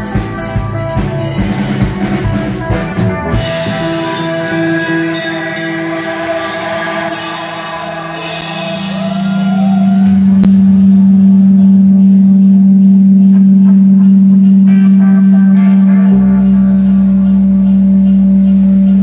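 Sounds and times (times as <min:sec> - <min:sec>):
deep bass layer: 0:00.0 - 0:19.0
electric guitar and bass drone: 0:00.0 - 0:19.0.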